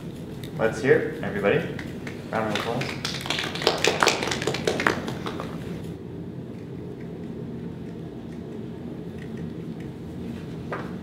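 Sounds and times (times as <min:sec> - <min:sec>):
low room hum: 0:00.0 - 0:11.0
people clapping: 0:01.8 - 0:05.8.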